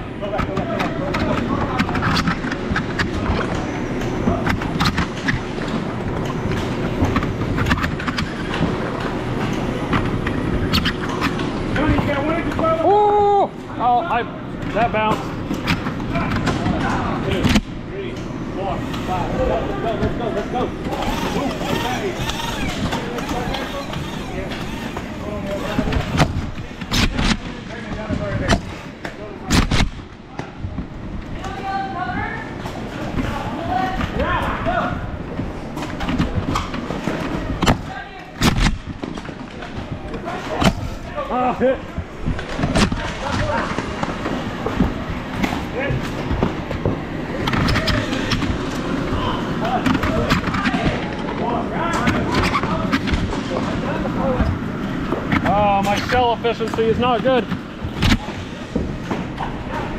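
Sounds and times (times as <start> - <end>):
players calling out: 18.2 - 26.8.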